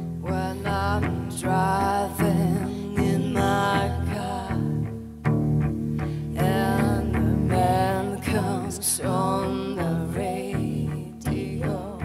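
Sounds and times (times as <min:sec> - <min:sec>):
women singing: 0:00.0 - 0:04.9, 0:06.3 - 0:12.0
cello: 0:00.0 - 0:12.0.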